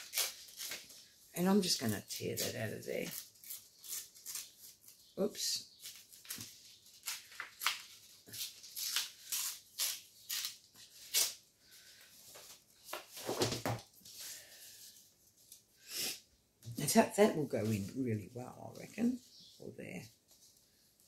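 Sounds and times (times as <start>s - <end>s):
magazine paper tearing: 0.0s - 1.0s, 2.3s - 5.1s, 5.8s - 11.4s.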